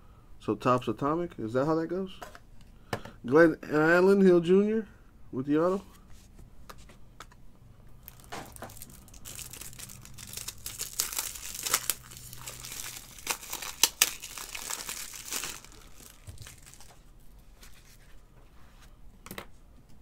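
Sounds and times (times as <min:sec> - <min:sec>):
packaging crinkling and tearing: 0:08.0 - 0:17.9.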